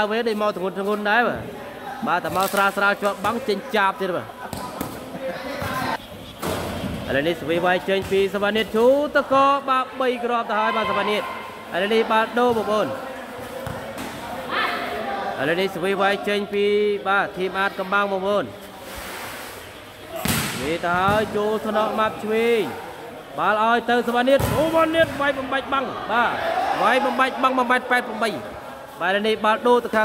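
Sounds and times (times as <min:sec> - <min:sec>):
voices echoing in a hall: 0:00.0 - 0:30.0
volleyball bouncing on floor: 0:13.6 - 0:14.1, 0:24.4 - 0:25.3.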